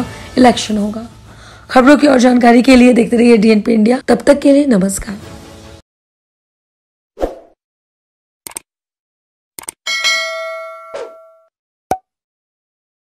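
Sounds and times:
short clicks: 8.5s - 8.7s, 9.6s - 9.8s
bell-like ding: 9.9s - 11.5s.

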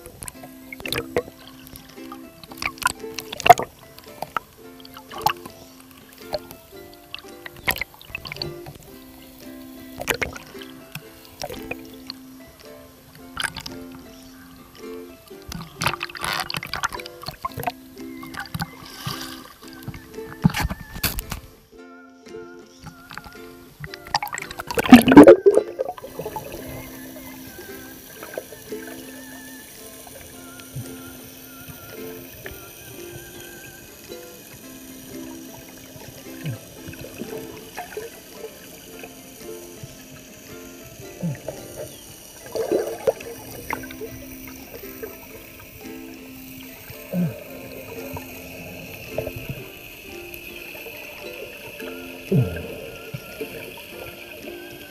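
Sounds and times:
small pops and crackles: 0.0s - 14.1s, 14.7s - 21.6s
soft background music: 0.0s - 54.9s
water surging: 0.0s - 54.9s
muffled underwater sound: 12.8s - 21.5s, 22.8s - 54.9s.

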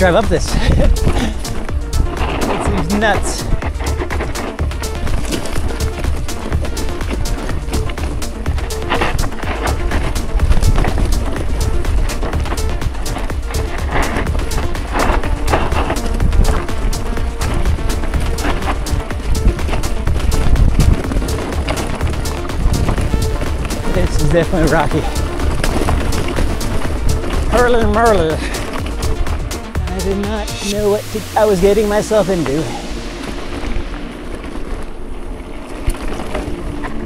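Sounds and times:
wind buffeting microphone: 0.0s - 30.4s
bike rattling over loose rock: 0.0s - 37.0s.

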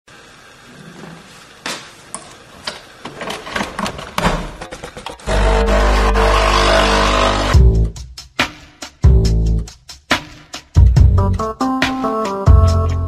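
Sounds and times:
espresso machine pump buzzing: 5.3s - 7.6s.

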